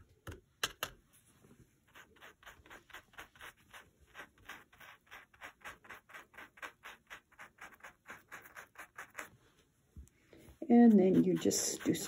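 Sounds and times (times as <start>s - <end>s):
stiff brush scrubbing fabric: 1.8s - 9.3s, 10.6s - 12.0s.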